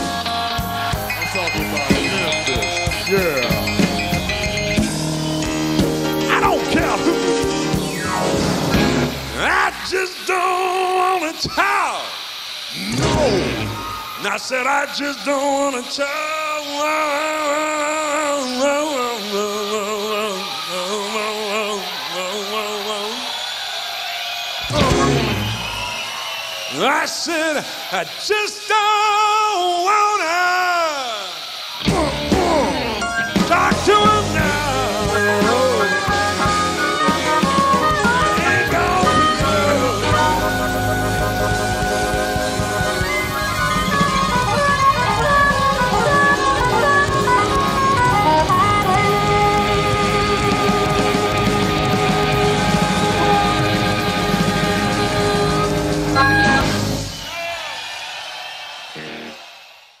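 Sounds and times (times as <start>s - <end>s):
bending guitar notes: 0.0s - 9.4s, 31.8s - 57.1s
rock band music: 0.0s - 10.9s, 12.9s - 14.2s, 24.6s - 26.1s, 31.8s - 57.6s, 59.0s - 59.4s.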